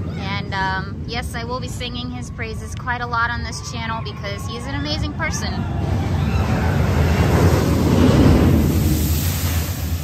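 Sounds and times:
water spray rushing and spattering: 0:07.0 - 0:10.0.

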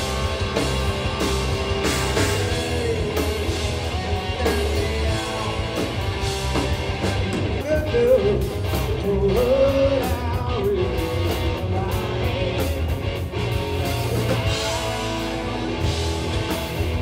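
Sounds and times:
bass guitar: 0:00.0 - 0:17.0
drums: 0:00.0 - 0:17.0
electric guitar: 0:00.0 - 0:17.0
male singer: 0:02.1 - 0:06.1, 0:07.5 - 0:12.9, 0:14.0 - 0:15.9.

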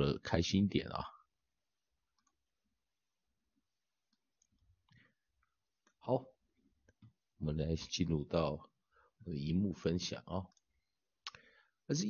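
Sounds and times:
man speaking: 0:00.0 - 0:01.3, 0:06.0 - 0:06.4, 0:07.4 - 0:10.6.

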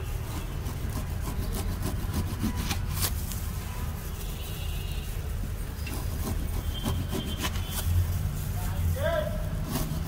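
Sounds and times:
knife sawing crunchy pastry: 0:00.0 - 0:03.2, 0:05.7 - 0:07.8, 0:09.5 - 0:10.0.

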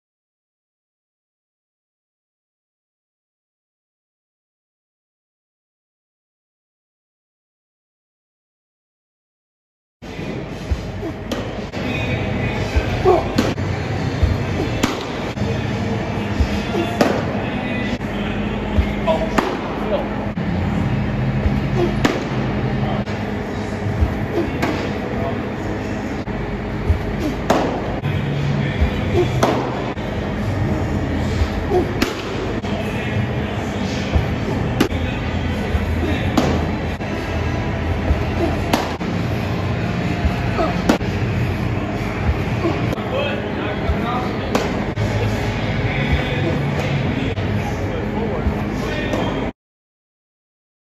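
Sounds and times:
steady background rush: 0:10.0 - 0:49.5
steady hum: 0:10.0 - 0:49.5
background voices: 0:21.4 - 0:41.1.

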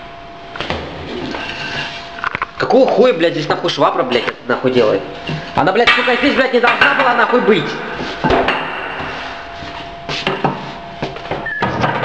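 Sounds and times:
faint steady hum: 0:00.0 - 0:12.0
sharp knocks and clunks: 0:08.2 - 0:09.2.

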